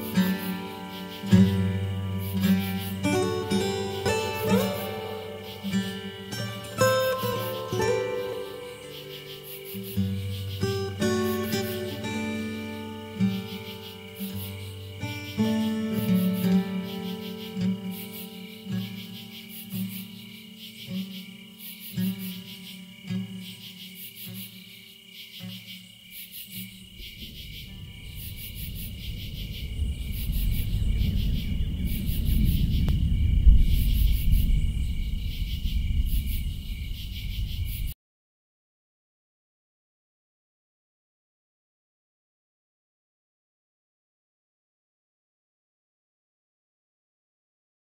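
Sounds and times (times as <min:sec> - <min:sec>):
acoustic guitar plucked notes: 0:00.0 - 0:20.2
insects chirping: 0:00.0 - 0:38.0
low rumble: 0:27.1 - 0:36.9.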